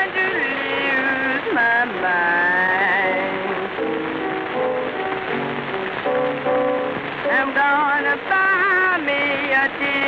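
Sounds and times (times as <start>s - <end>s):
woman singing: 0.0s - 3.8s, 7.2s - 10.0s
piano accompaniment: 0.0s - 10.0s
record surface hiss: 0.0s - 10.0s.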